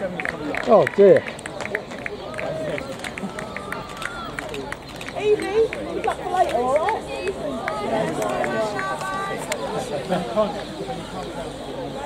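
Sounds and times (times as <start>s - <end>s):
spectators calling: 0.0s - 12.0s.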